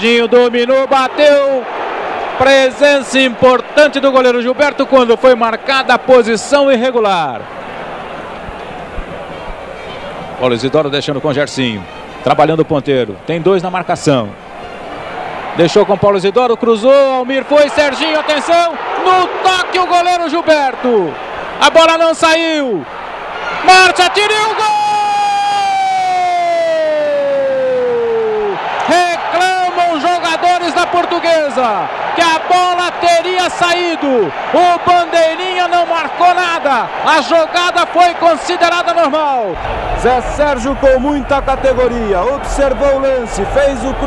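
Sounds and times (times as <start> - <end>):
stadium crowd noise: 0.0 - 44.0
commentator talking: 28.9 - 44.0.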